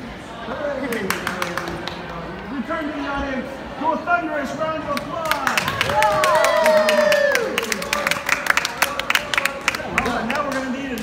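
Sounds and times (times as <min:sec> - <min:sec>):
audience clapping and cheering: 0:00.9 - 0:02.3, 0:05.0 - 0:11.0.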